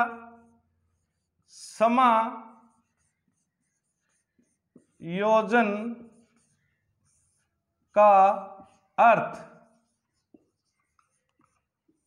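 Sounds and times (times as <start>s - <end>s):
marker squeaking on whiteboard: 0.0s - 12.0s.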